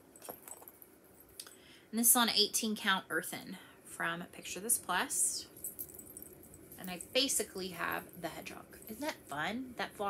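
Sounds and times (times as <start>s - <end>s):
light handling clicks and rustles: 0.0s - 1.5s, 5.5s - 9.3s.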